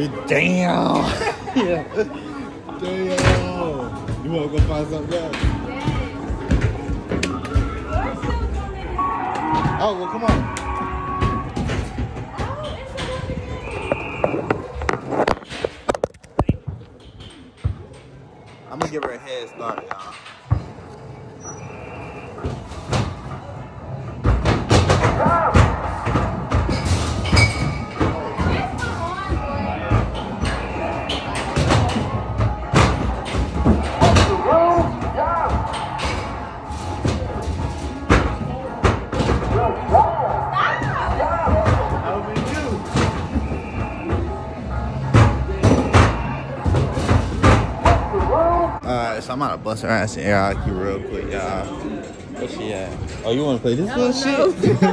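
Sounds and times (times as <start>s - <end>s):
arcade background noise: 0.0s - 54.9s.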